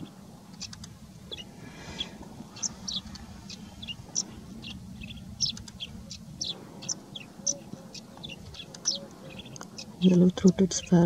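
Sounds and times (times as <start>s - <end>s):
sparrow chirping: 0.0s - 11.0s.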